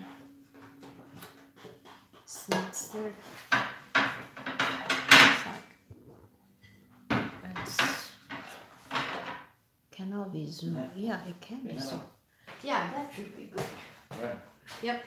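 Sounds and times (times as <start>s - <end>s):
plates clattering: 0.0s - 5.9s, 6.6s - 9.5s.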